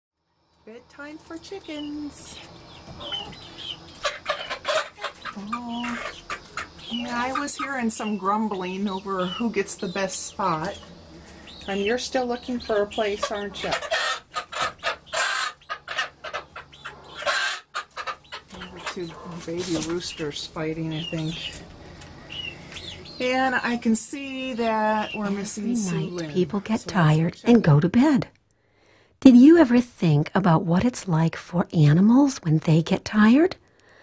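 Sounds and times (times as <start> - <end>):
chickens clucking: 1.3 - 27.8.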